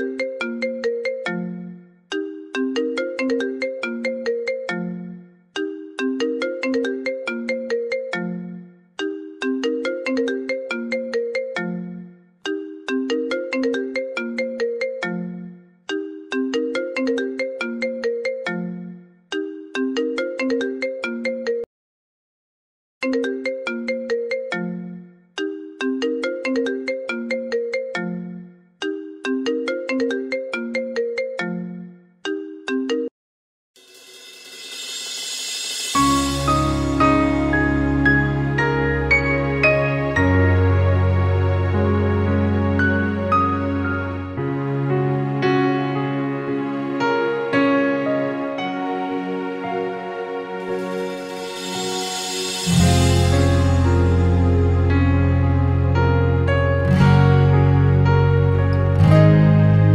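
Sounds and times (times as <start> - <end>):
smartphone ringtone: 0.0 - 21.7, 35.4 - 37.9.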